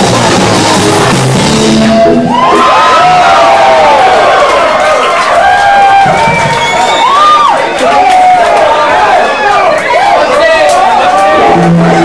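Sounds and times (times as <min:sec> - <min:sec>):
punk band song: 0:00.0 - 0:02.4
crowd cheering: 0:00.0 - 0:12.0
people yelling long shouts: 0:07.0 - 0:12.0.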